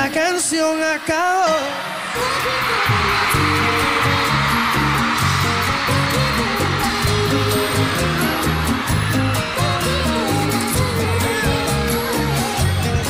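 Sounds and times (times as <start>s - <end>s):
crowd cheering: 1.4s - 13.0s
live band playing: 1.5s - 13.0s.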